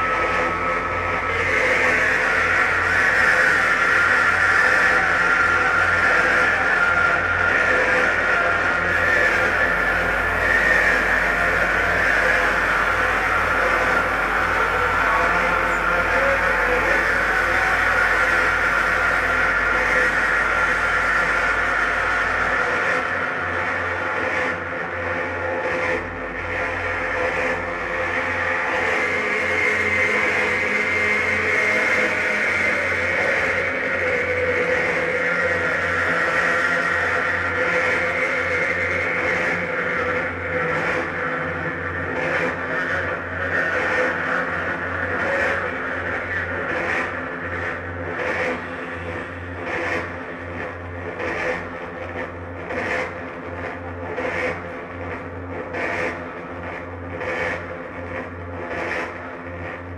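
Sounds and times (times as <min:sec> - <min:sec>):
loud electronic drone: 0:00.0 - 0:59.9
low hum: 0:08.9 - 0:22.7.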